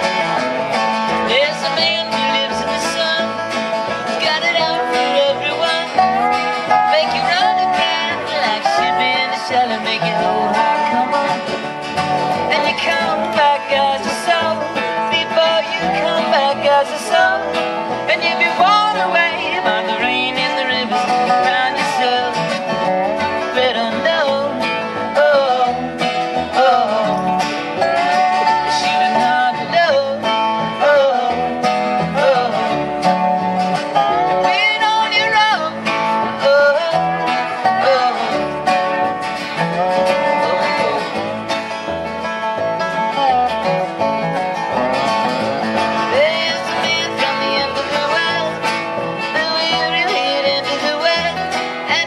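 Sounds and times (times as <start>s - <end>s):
fiddle: 0.0s - 52.0s
lap steel guitar: 0.0s - 52.0s
man singing: 0.0s - 52.0s
strummed acoustic guitar: 0.0s - 52.0s
upright bass: 0.0s - 52.0s.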